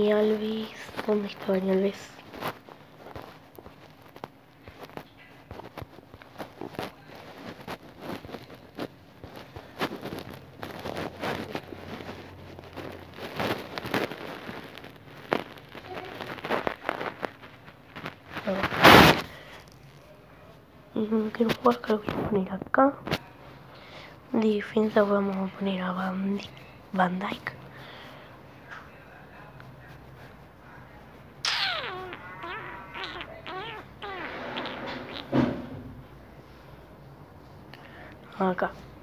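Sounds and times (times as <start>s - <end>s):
burst of rustling noise: 0.1s - 20.0s, 31.2s - 36.2s.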